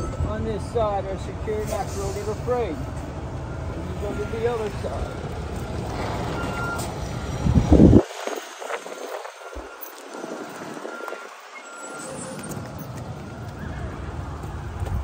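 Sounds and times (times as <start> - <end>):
wind rumbling on microphone: 5.0 - 11.4, 12.6 - 15.0.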